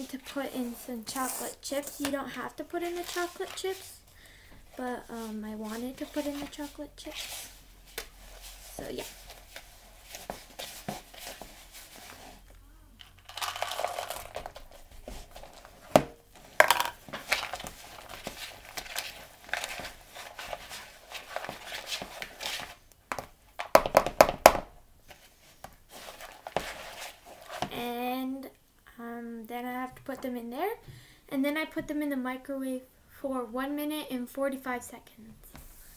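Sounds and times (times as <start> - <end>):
whisk scraping in plastic bowl: 25.9 - 27.7.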